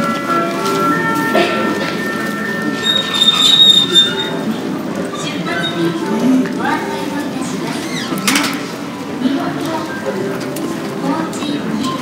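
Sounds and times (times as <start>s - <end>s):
public address chime: 0.0s - 4.7s
airport terminal background: 0.0s - 12.0s
boarding announcement: 0.0s - 12.0s.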